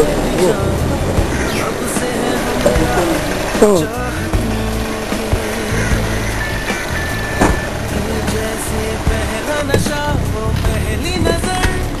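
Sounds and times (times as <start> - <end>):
music with long held notes: 0.0 - 12.0
street and traffic noise: 0.0 - 12.0.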